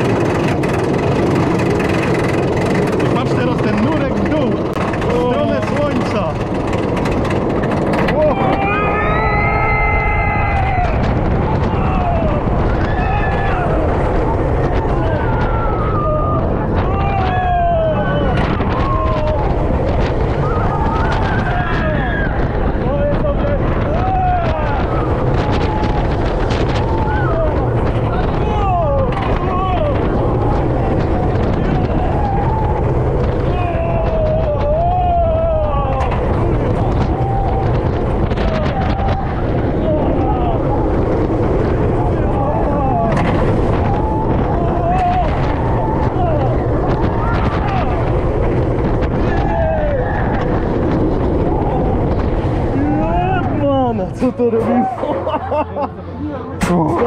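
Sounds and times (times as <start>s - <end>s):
riders screaming and shouting: 0.0s - 53.9s
roller coaster rumbling on track: 0.0s - 57.0s
wind buffeting microphone: 0.0s - 57.0s.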